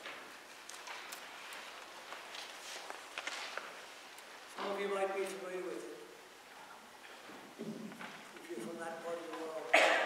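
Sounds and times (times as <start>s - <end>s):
loud cough: 9.7s - 10.0s.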